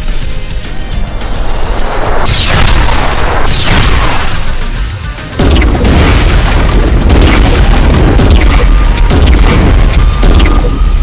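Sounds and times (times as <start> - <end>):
dramatic music: 0.0 - 11.0
deep explosion booms: 5.4 - 10.9.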